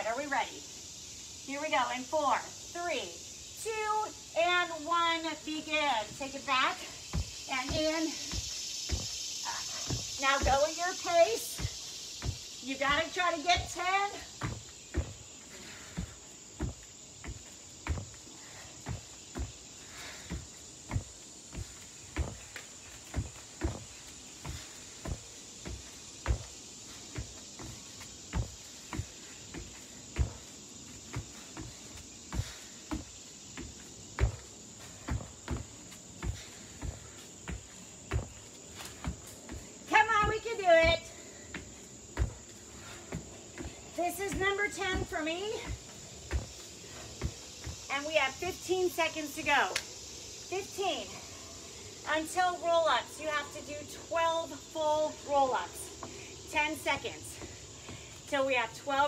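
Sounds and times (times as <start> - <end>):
high insect buzz: 0.0 - 59.0
thuds on a yoga mat: 4.4 - 48.6.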